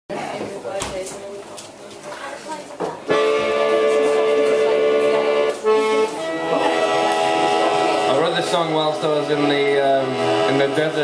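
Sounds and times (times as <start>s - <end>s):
accordion sustained chords: 3.1s - 11.0s.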